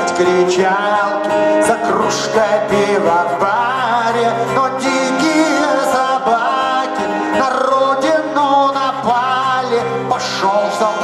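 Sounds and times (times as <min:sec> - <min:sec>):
acoustic band accompaniment: 0:00.0 - 0:11.0
man singing into microphone: 0:00.0 - 0:11.0.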